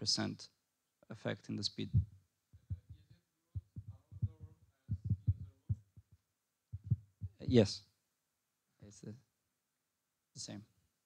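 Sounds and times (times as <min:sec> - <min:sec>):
muffled bass-heavy voice: 0:03.6 - 0:05.8.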